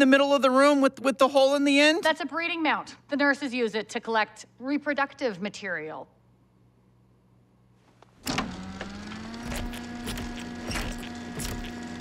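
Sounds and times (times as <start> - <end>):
electric motor humming: 8.2 - 12.0
machine clunk: 8.2 - 12.0
mechanical knocks and clanks: 8.2 - 12.0.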